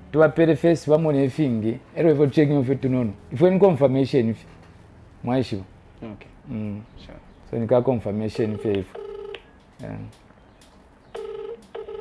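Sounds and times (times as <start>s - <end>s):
telephone ringing tone: 8.4s - 9.5s, 11.1s - 12.0s.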